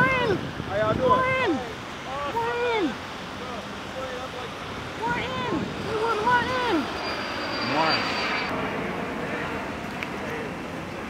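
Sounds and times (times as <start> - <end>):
distant traffic: 0.0 - 11.0
thin high tone: 6.0 - 8.6.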